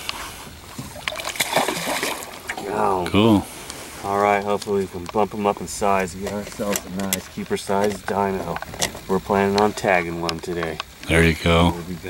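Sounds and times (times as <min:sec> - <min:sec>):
fish splashing in water: 0:00.6 - 0:02.7.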